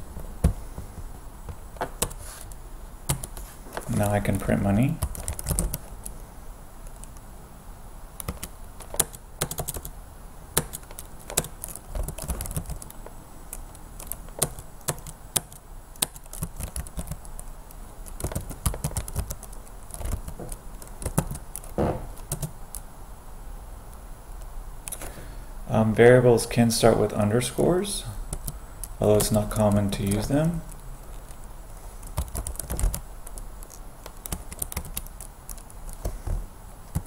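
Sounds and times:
computer keyboard key clicks: 5.0s - 5.9s, 8.2s - 9.9s, 10.6s - 22.8s, 32.0s - 36.1s.

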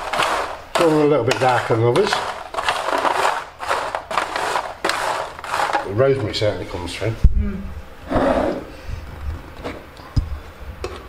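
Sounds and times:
spoon stirring nuts in foil tray: 0.0s - 6.7s.

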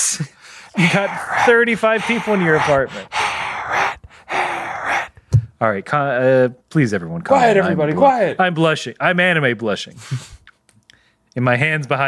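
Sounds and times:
man laughing breathlessly: 0.0s - 5.1s.

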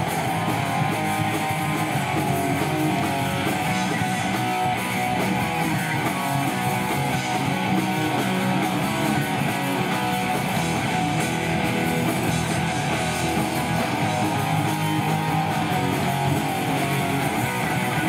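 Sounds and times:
electric guitars strumming: 0.0s - 18.0s
live pop-punk band playing: 0.0s - 18.0s.

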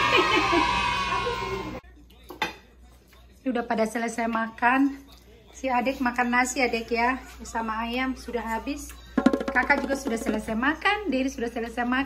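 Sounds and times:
loud voices: 0.0s - 1.8s.

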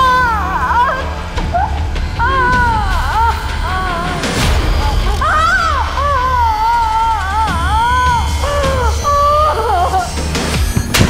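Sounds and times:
low drone: 0.0s - 10.8s.

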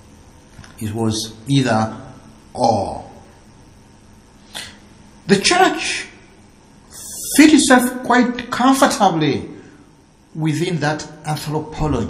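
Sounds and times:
faint steady hum: 0.0s - 12.0s
person sharp in-breath: 4.4s - 4.8s.

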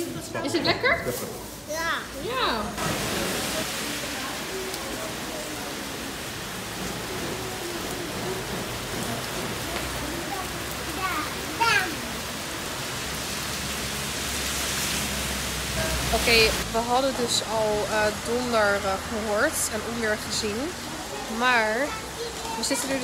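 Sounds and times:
heavy rain on pavement: 0.0s - 23.0s.

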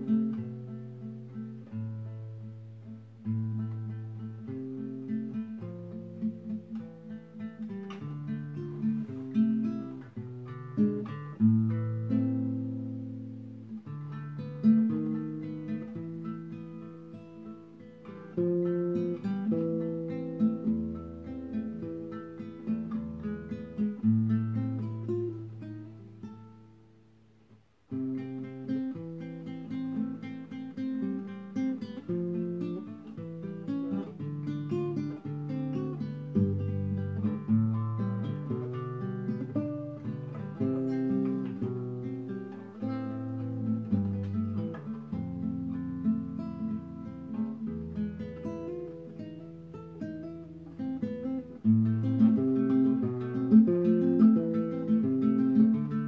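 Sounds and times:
classical guitar fingerstyle: 0.0s - 56.0s.

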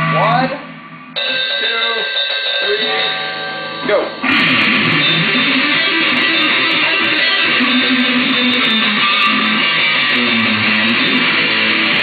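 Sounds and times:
distorted electric guitar chord ringing: 0.0s - 12.0s.

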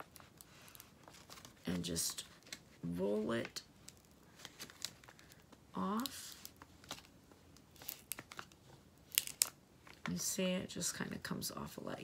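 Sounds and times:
paper backing crinkling off tape: 0.0s - 9.5s.

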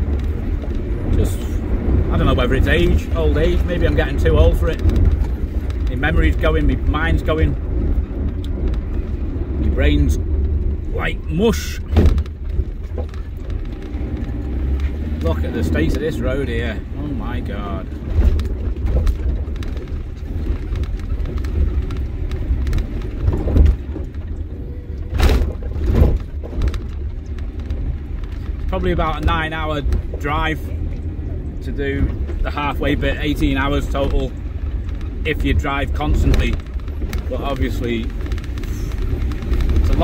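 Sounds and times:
car road rumble: 0.0s - 40.0s
knocks and rattles: 0.0s - 40.0s
suspension thuds over bumps: 0.0s - 40.0s.

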